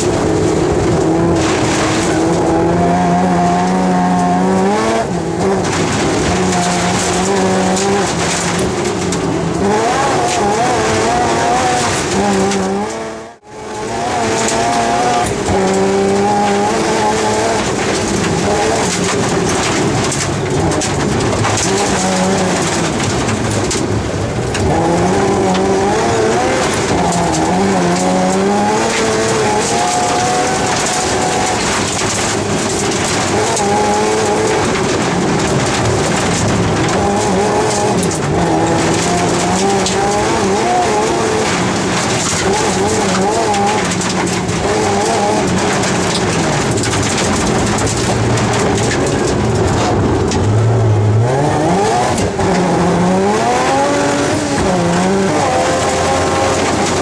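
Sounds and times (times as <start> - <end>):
rally car engine revving: 0.0 - 57.0
tyres on snow and gravel: 0.0 - 57.0.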